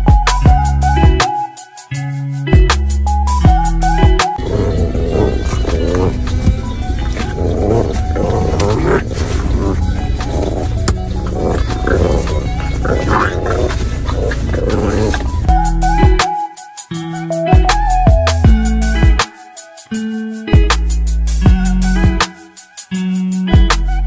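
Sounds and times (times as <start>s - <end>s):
background music with bass: 0.0s - 24.0s
puppy making rough noises: 4.3s - 15.5s.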